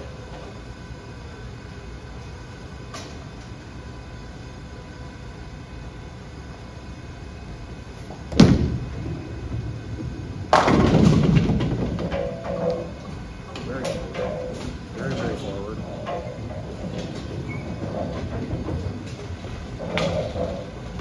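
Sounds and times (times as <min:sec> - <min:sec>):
bowling ball rolling: 0:08.0 - 0:21.0
bowling ball thud on lane: 0:08.3 - 0:13.0
bowling pins crashing: 0:08.3 - 0:21.0.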